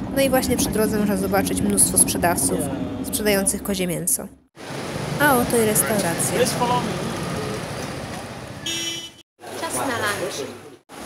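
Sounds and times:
motorbikes passing: 0:00.0 - 0:03.7, 0:04.6 - 0:11.0
street traffic: 0:00.0 - 0:11.0
vehicle horn beep: 0:08.6 - 0:09.2.

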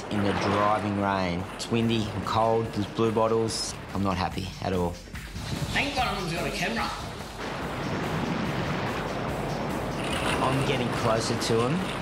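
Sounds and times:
rough surf breaking: 0:05.4 - 0:12.0.

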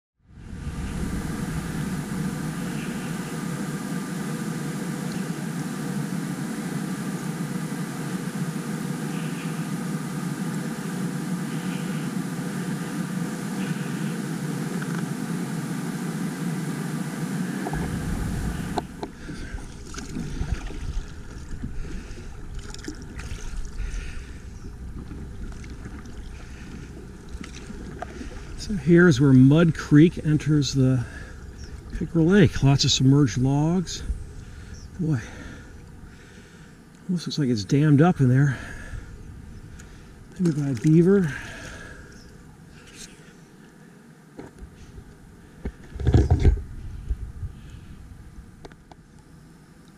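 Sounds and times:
wind and water rushing: 0:00.2 - 0:09.2, 0:14.4 - 0:42.7
water lapping: 0:17.4 - 0:36.8
paddle splashes and knocks: 0:18.8 - 0:23.7.

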